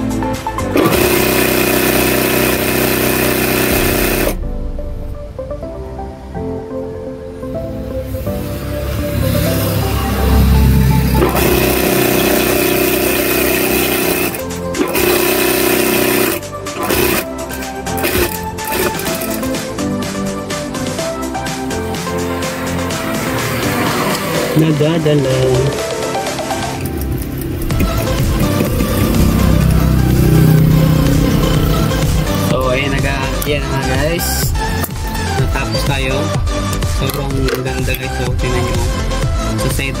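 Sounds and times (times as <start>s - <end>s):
background music: 0.0s - 40.0s
sewing machine stitching: 0.8s - 4.4s, 11.2s - 19.6s.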